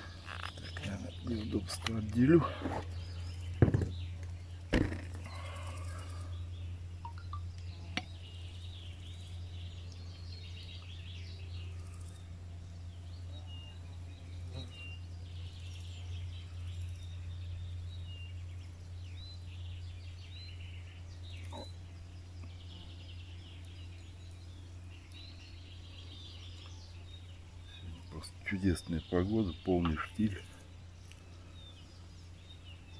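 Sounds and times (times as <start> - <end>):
small birds chirping: 0.0 - 32.9
steady low hum: 0.0 - 32.9.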